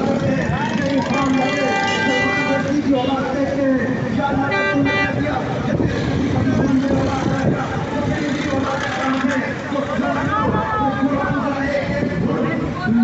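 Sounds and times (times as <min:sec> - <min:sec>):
rumble of engines: 0:00.0 - 0:13.0
voices: 0:00.0 - 0:13.0
vehicle horns honking: 0:01.0 - 0:03.4, 0:04.4 - 0:05.4.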